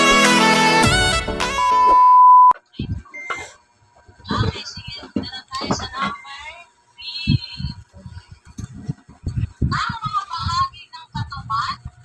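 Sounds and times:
steady test-tone beep: 1.7s - 3.6s.

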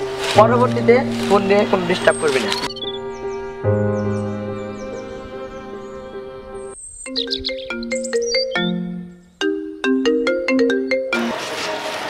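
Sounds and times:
high chirps: 1.1s - 11.2s
phone ringtone melody: 7.1s - 11.4s.

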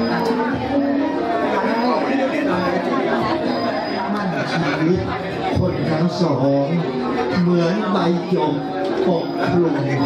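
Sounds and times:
chatter of people talking: 0.0s - 10.0s.

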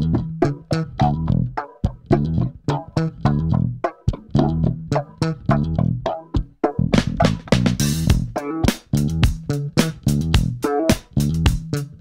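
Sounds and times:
instrumental band music: 0.1s - 12.0s.

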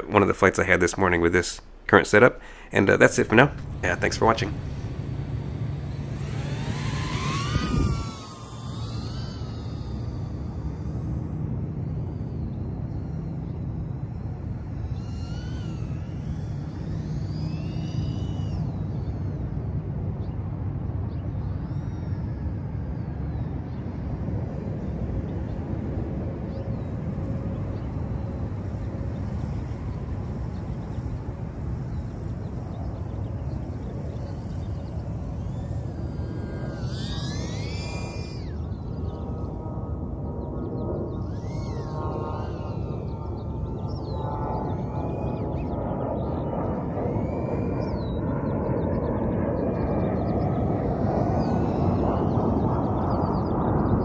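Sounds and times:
steady rushing noise: 0.0s - 19.8s, 24.2s - 48.2s
quadcopter motors whining: 0.0s - 54.0s.

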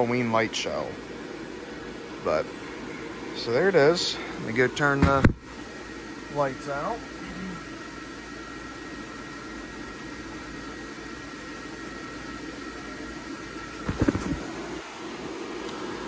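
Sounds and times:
blower fan whooshing hum: 0.0s - 16.0s.

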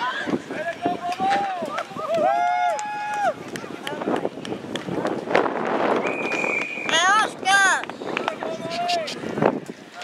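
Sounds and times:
long drawn-out shout: 1.2s - 3.4s
jumble of voices: 6.9s - 10.0s.

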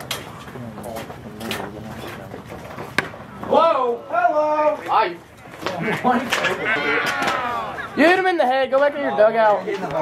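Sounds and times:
people talking indistinctly: 0.5s - 10.0s.

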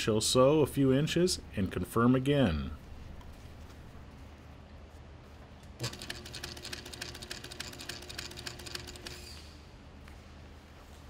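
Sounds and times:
sewing machine stitching: 5.8s - 9.4s.

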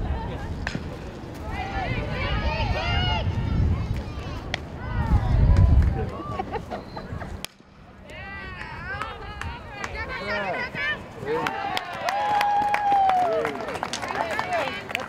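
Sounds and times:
wind rumbling on microphone: 0.0s - 7.4s, 8.1s - 10.2s.

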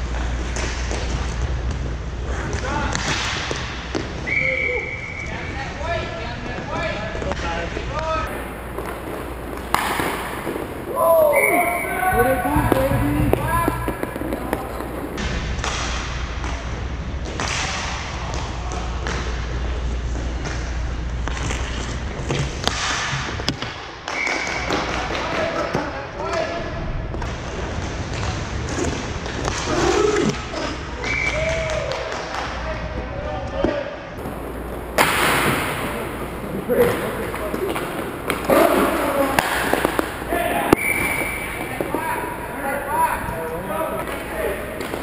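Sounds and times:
hockey sticks and puck clacking: 0.1s - 4.3s, 8.3s - 19.4s, 20.4s - 25.9s, 27.2s - 32.7s, 34.2s - 45.0s
players calling out: 8.3s - 15.2s, 34.2s - 45.0s.

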